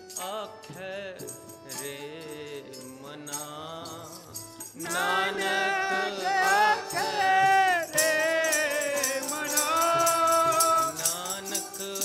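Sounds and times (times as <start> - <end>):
harmonium: 0.0 - 12.0
jingling metallic percussion: 0.0 - 12.0
man singing long notes: 0.0 - 12.0.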